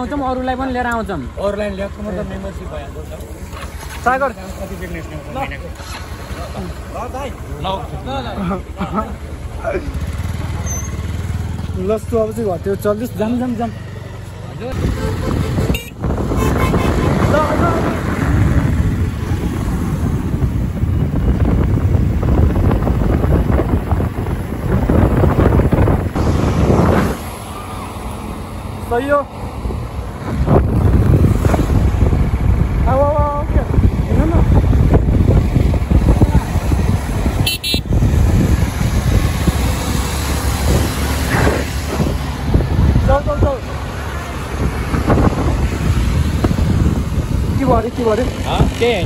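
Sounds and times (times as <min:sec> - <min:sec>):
motorcycle engine: 0:00.0 - 0:49.0
road noise: 0:00.0 - 0:49.0
wind buffeting microphone: 0:14.7 - 0:49.0.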